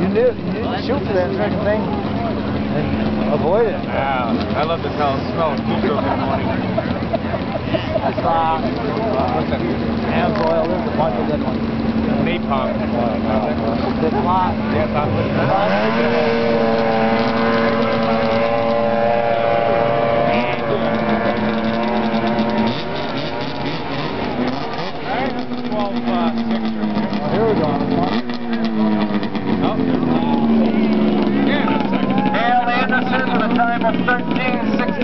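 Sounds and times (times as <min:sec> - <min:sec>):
snowmobile engine revving: 0:00.0 - 0:35.0
voices: 0:00.0 - 0:35.0.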